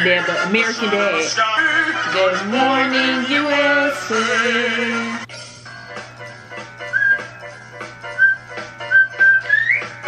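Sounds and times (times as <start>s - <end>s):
whistled tune over a beat: 5.9s - 10.0s.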